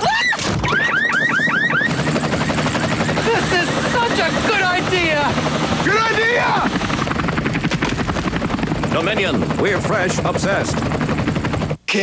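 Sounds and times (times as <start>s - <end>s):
helicopter rotor beating: 0.5s - 11.9s.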